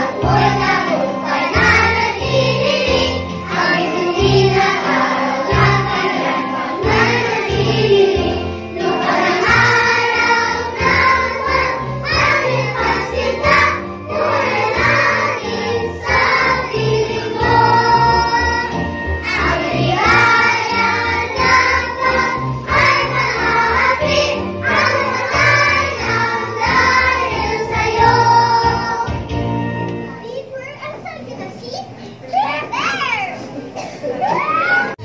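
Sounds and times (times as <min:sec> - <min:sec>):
children and adults singing: 0:00.0 - 0:29.3
instrumental accompaniment with bass: 0:00.2 - 0:30.2.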